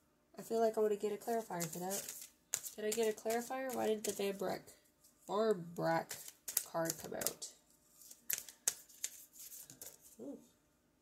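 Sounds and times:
cards rustling and clicking: 1.0s - 4.6s, 6.0s - 10.2s.

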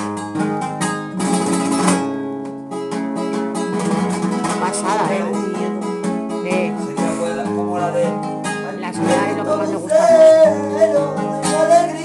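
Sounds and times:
flamenco acoustic guitar: 0.0s - 12.0s.

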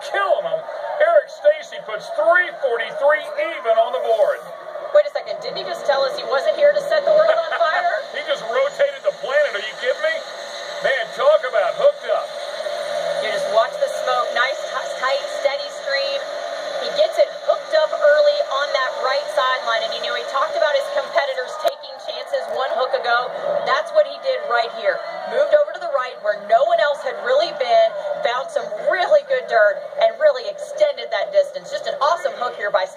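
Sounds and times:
steady drone: 0.0s - 32.9s
television sports commentary: 0.0s - 32.9s.

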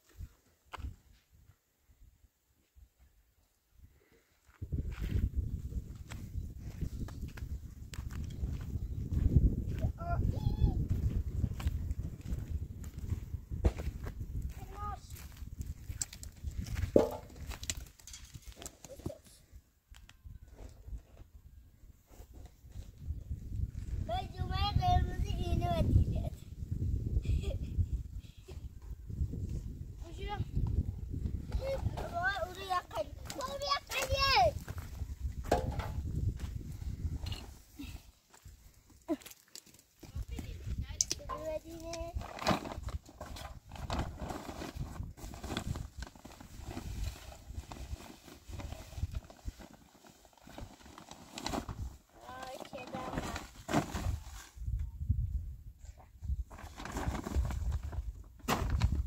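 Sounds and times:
steps on stony ground: 4.4s - 19.3s, 31.6s - 42.2s
plastic feed sack rustling: 42.2s - 54.5s, 56.5s - 59.0s.

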